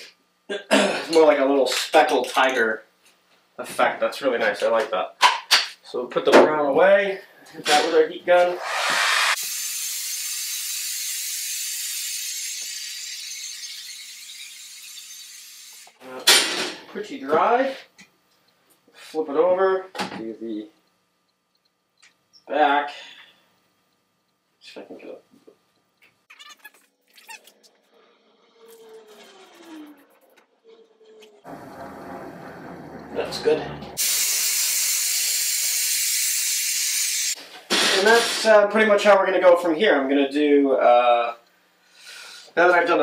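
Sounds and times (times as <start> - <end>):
heat gun fan blowing: 8.4 - 9.5
heat gun blowing hiss: 8.4 - 15.0, 34.0 - 38.5.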